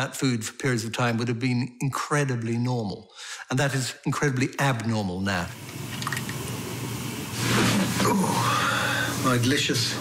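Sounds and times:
hot water pouring into cup: 0:05.5 - 0:10.0.

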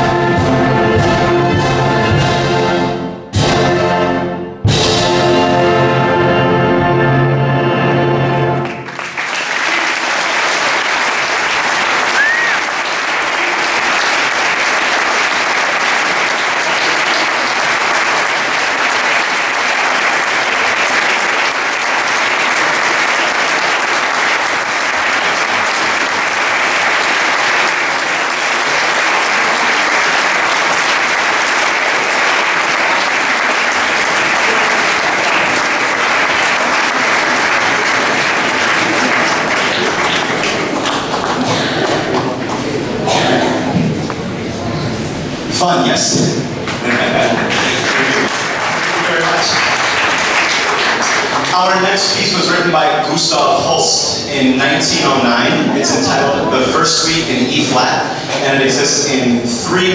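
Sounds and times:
audience applauding: 0:08.5 - 0:44.6, 0:46.5 - 0:59.9.

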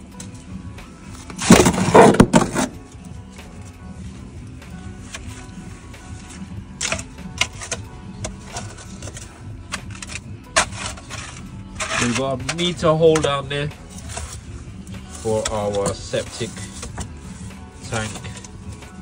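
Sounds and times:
background music: 0:00.0 - 0:19.0.

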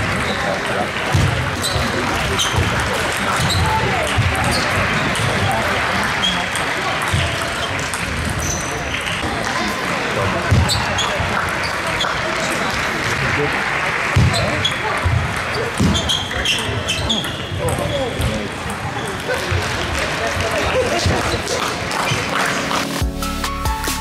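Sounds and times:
murmur of voices: 0:00.0 - 0:23.0.

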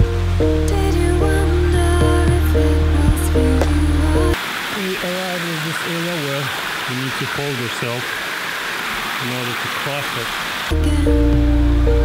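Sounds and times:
background music: 0:00.0 - 0:04.4, 0:10.7 - 0:12.0
creek running over rocks: 0:00.0 - 0:11.1
man talking: 0:06.8 - 0:08.1, 0:09.2 - 0:10.4.

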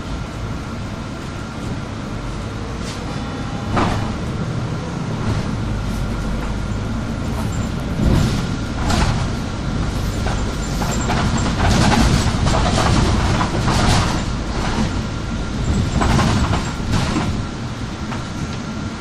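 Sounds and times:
bus engine humming: 0:00.0 - 0:19.0
bus body rattling and knocking: 0:03.0 - 0:19.0.

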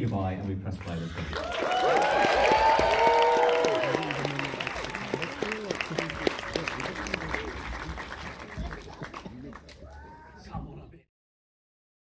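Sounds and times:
audience applause: 0:00.8 - 0:10.4
crowd cheering and whooping: 0:01.2 - 0:06.9, 0:09.7 - 0:10.5.

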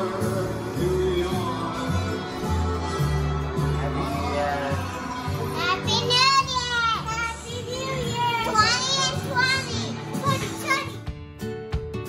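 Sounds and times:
music with plucked notes: 0:08.4 - 0:12.0.

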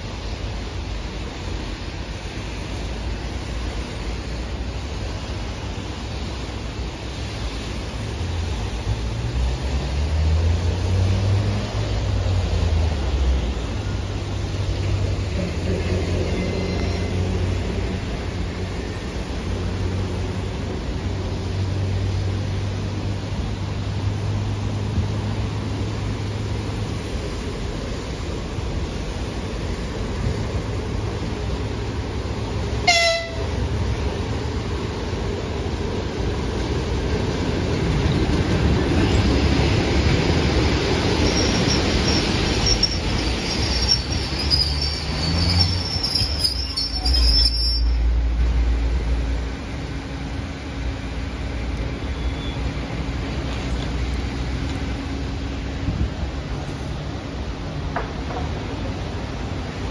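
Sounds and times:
train wheels rumbling: 0:00.0 - 0:59.9
brakes squealing: 0:12.5 - 0:19.6, 0:38.6 - 0:48.8, 0:51.7 - 0:55.3
train horn blast: 0:32.8 - 0:33.6.

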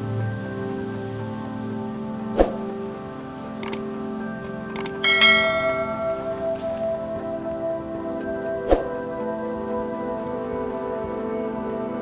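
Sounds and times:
background music: 0:00.0 - 0:12.0
mouse click: 0:04.8 - 0:05.0
bright bell ding: 0:05.0 - 0:06.6.

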